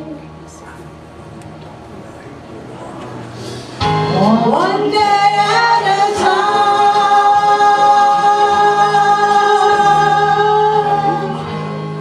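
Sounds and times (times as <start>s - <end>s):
gospel music: 3.2s - 12.0s.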